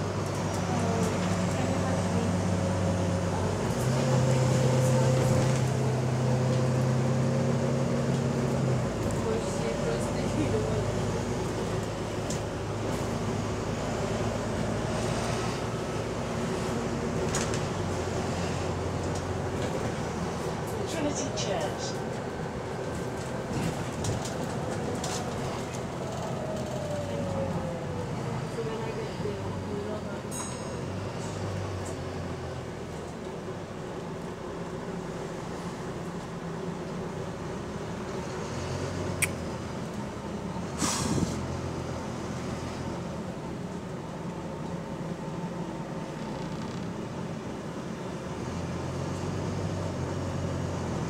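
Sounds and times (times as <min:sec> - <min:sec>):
bus engine and road rumble: 0:00.0 - 0:51.0
sharp air hiss: 0:40.8 - 0:41.4.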